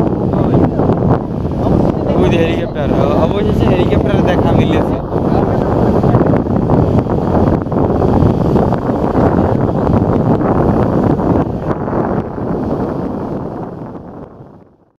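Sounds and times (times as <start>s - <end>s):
river water running: 0.0s - 13.7s
boat engines: 0.0s - 14.5s
wind rumble on microphone: 0.0s - 14.9s.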